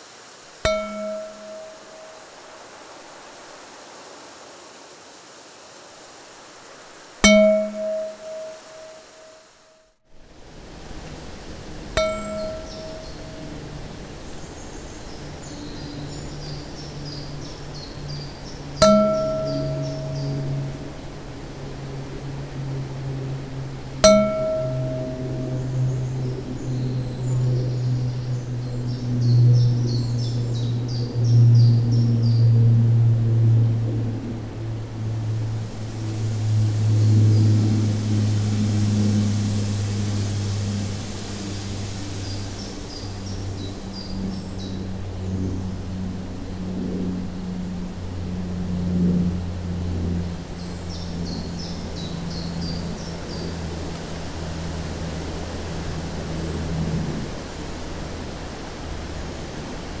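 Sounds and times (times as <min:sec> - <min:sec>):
soft high hiss: 0:00.0 - 0:30.9, 0:31.8 - 0:47.3
low humming drone: 0:00.6 - 0:02.8, 0:07.2 - 1:00.0
high bird-like chirps: 0:00.7 - 0:02.2, 0:07.2 - 0:09.4, 0:12.0 - 0:13.5, 0:18.8 - 0:20.8.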